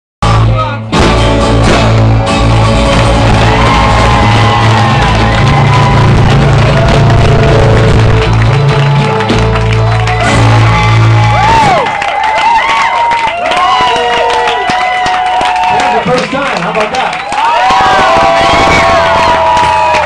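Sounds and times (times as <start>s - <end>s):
live rock band playing: 0.2s - 12.0s
crowd cheering and whistling: 2.0s - 20.0s.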